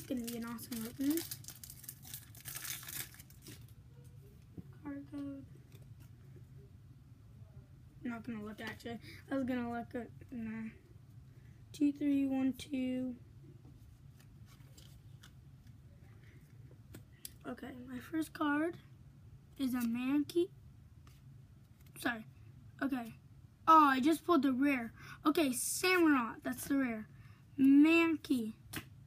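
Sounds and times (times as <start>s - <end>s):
foil wrapper crinkling and tearing: 0.0s - 3.7s
steady low hum: 0.0s - 29.0s
quiet handling of wrapper: 0.1s - 4.5s, 13.9s - 17.4s.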